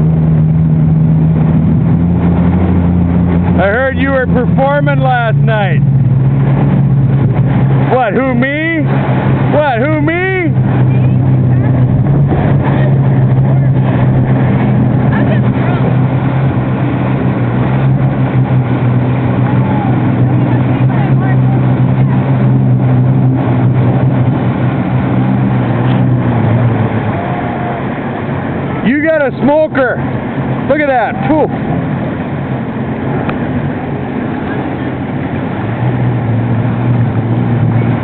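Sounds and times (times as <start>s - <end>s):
jet ski engine running: 0.0s - 38.0s
water rushing: 0.0s - 38.0s
wind noise: 0.0s - 38.0s.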